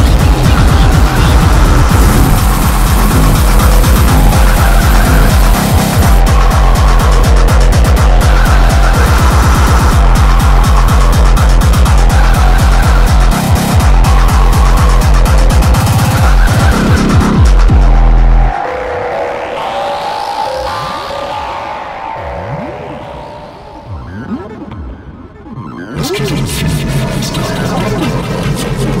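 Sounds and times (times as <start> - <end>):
distorted kick drums hammering: 0.0 - 18.6
stepped synth pitches: 0.0 - 29.0.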